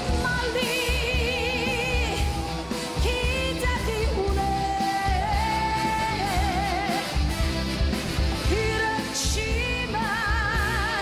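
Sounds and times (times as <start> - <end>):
woman singing pop song: 0.0 - 7.3, 8.4 - 11.0
live band playing: 0.0 - 11.0.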